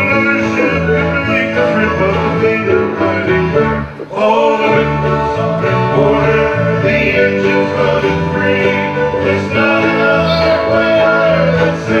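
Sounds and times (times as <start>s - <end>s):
live folk band playing: 0.0s - 12.0s.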